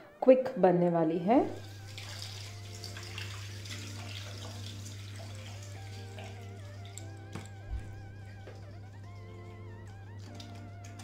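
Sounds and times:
soft background music: 0:00.0 - 0:11.0
tap water over washing hands: 0:01.5 - 0:09.2.

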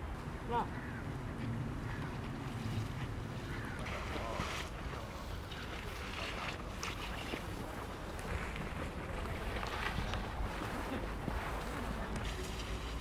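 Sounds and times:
wind rumble on microphone: 0:04.7 - 0:13.0.

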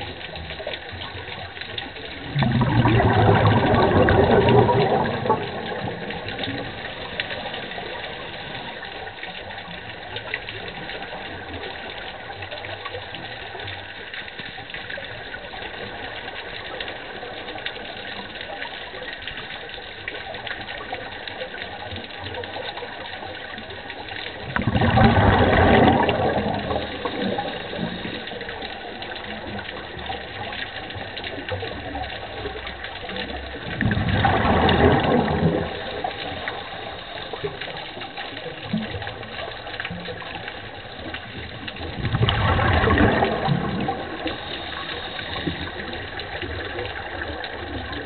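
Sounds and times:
scuba exhaust bubbles gurgling: 0:00.0 - 0:48.0
underwater crackle of clicks: 0:00.0 - 0:48.0
underwater hiss: 0:41.8 - 0:48.0.

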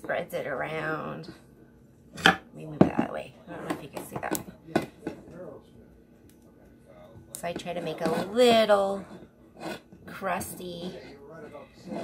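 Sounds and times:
quiet murmured speech: 0:02.9 - 0:12.0.

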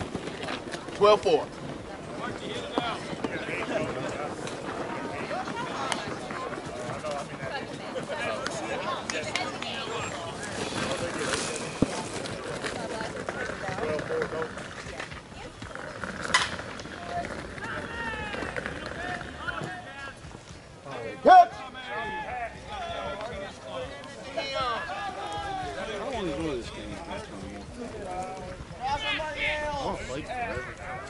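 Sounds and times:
sharp crack: 0:16.2 - 0:17.3
players calling out: 0:16.8 - 0:20.3, 0:20.9 - 0:31.0.

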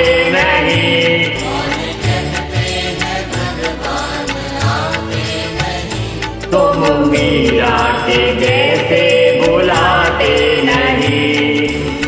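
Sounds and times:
devotional karaoke backing track: 0:00.0 - 0:12.0
person singing: 0:00.0 - 0:12.0.

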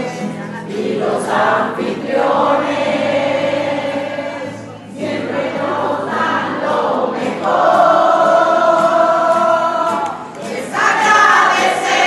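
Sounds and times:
group of voices singing: 0:00.0 - 0:12.0.

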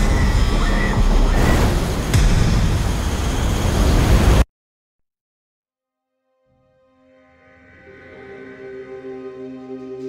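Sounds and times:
heavy rumble of spacecraft: 0:00.0 - 0:04.4.

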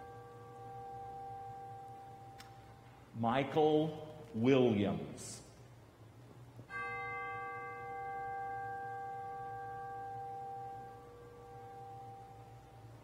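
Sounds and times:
bell ringing: 0:06.7 - 0:13.0.

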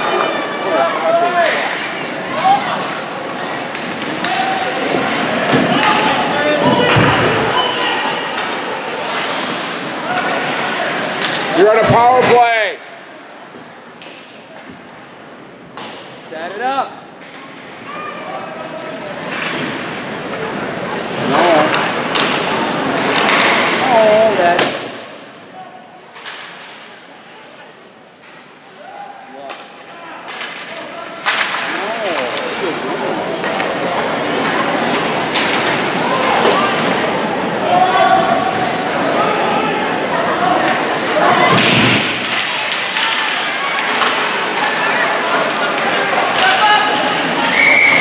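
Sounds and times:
hockey sticks and puck knocking: 0:03.6 - 0:07.4, 0:21.2 - 0:23.8.

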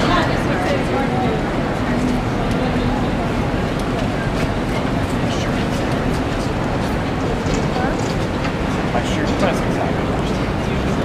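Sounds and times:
city street rumble: 0:00.0 - 0:11.0
crowd chatter: 0:00.0 - 0:11.0.

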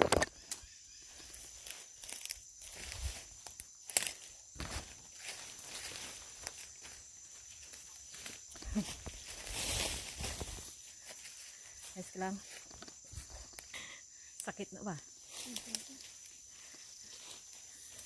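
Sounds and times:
leaves and branches rustling: 0:00.0 - 0:13.7, 0:15.0 - 0:18.0
footsteps through undergrowth: 0:00.6 - 0:13.7, 0:15.1 - 0:18.0.

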